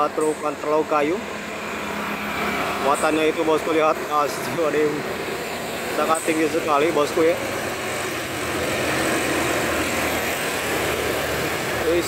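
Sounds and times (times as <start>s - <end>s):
diesel truck driving past: 0.0s - 12.0s
motorcycles: 0.0s - 12.0s.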